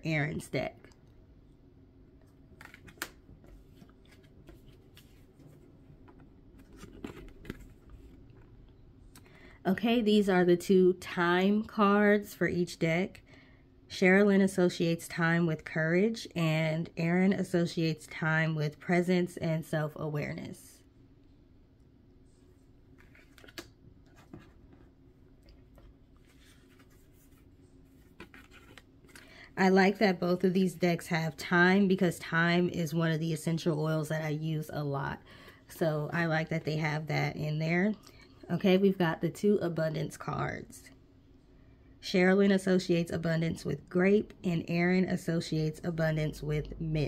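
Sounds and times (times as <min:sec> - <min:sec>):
cards rustling and sliding: 0:02.5 - 0:08.5, 0:22.9 - 0:29.3
cards sliding across a table: 0:03.4 - 0:05.7, 0:25.8 - 0:29.3.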